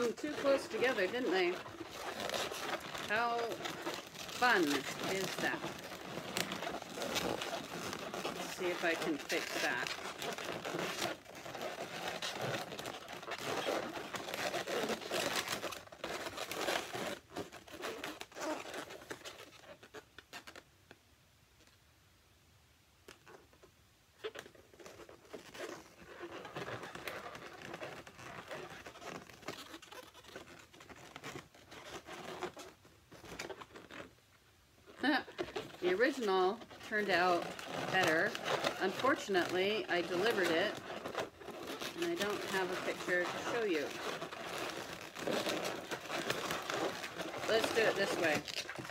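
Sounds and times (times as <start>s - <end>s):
balloons squeaking and crinkling: 0.0s - 21.0s, 23.0s - 48.9s.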